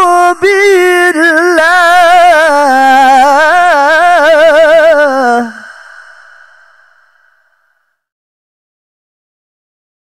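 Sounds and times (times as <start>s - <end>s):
echo of man's sung recitation: 0.0s - 5.8s.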